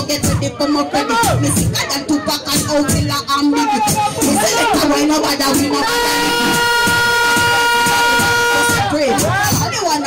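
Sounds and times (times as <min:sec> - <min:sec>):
music beat: 0:00.0 - 0:10.0
air horn blast: 0:05.8 - 0:08.9.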